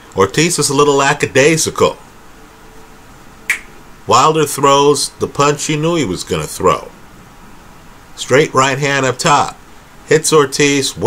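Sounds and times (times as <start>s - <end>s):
short sharp click: 3.5s - 3.7s.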